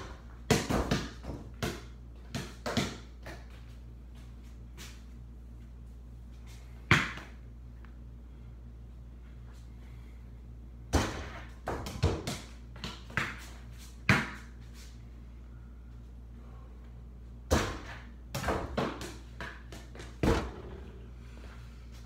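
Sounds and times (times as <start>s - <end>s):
basketball banging backboard and rim: 0.0s - 3.1s, 10.9s - 12.4s, 17.5s - 19.2s, 19.8s - 21.1s
steady low hum: 0.0s - 22.0s
basketball bouncing on hard floor: 0.5s - 3.4s, 10.9s - 13.4s, 17.5s - 20.9s.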